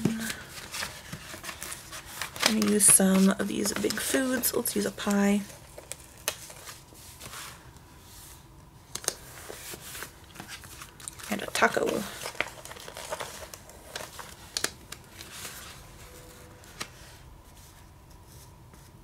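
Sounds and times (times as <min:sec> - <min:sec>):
sticker sheets crinkling: 0:00.0 - 0:07.6, 0:08.9 - 0:17.2.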